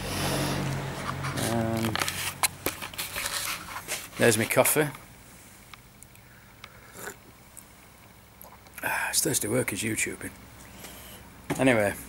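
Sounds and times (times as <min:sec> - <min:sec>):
man sipping coffee: 0:06.1 - 0:07.7, 0:08.4 - 0:08.9.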